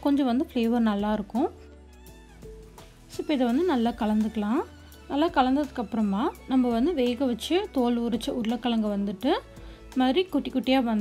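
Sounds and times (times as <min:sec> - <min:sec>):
woman speaking: 0:00.0 - 0:01.6, 0:03.1 - 0:11.0
soft background music: 0:00.0 - 0:11.0.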